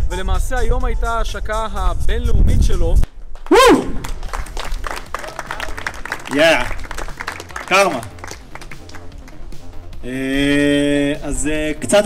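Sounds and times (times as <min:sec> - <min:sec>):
crowd clapping and applause: 0:03.3 - 0:09.8.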